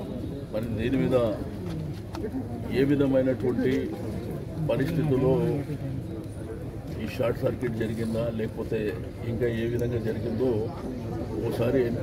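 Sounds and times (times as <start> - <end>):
man talking: 6.9 - 12.0.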